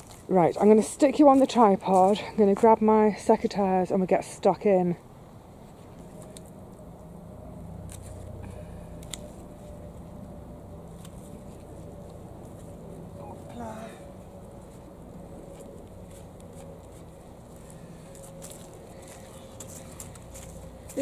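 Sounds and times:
distant road traffic hum: 0:00.0 - 0:21.0.

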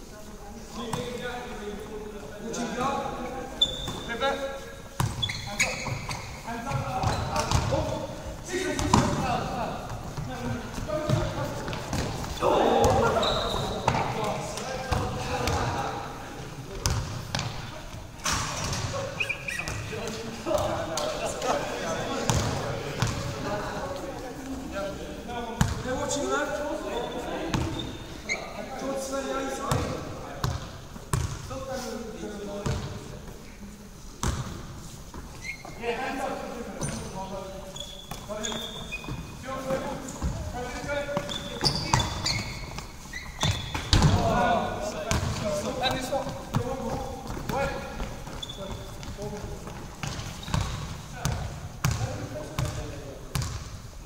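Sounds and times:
players shouting: 0:12.3 - 0:14.2.

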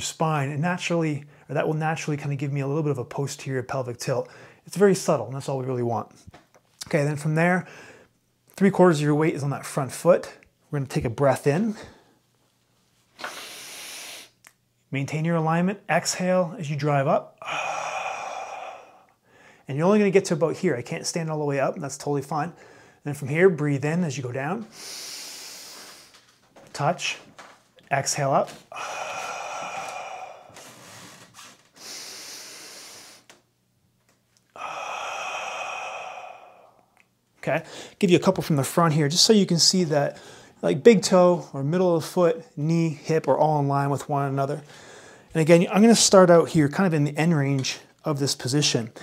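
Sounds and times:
man breathing in deeply: 0:17.4 - 0:19.7, 0:24.7 - 0:26.2, 0:28.7 - 0:33.4, 0:34.5 - 0:37.0, 0:44.7 - 0:45.3.

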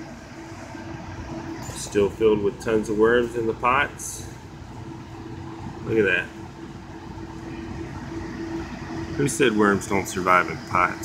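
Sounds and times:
low mechanical hum: 0:00.0 - 0:11.0
faint pitched tone: 0:07.2 - 0:11.0.

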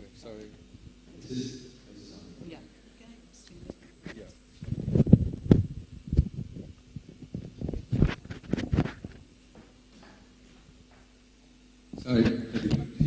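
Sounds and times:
faint steady hum: 0:00.0 - 0:13.0
microphone handling thumps: 0:03.6 - 0:11.2, 0:11.9 - 0:13.0.

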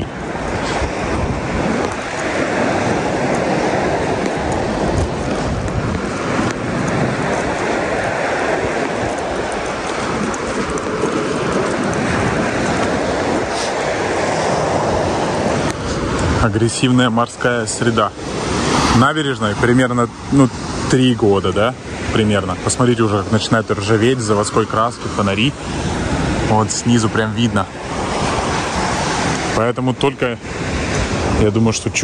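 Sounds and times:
sea surf washing onto beach: 0:00.0 - 0:32.0.

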